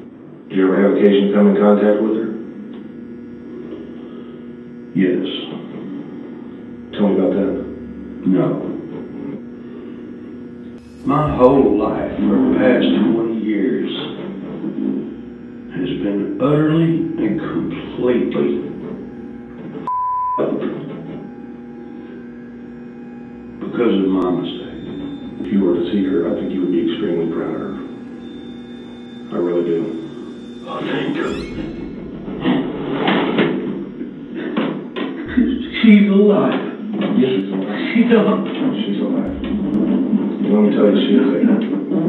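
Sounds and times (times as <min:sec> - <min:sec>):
low electrical hum: 0:00.0 - 0:42.0.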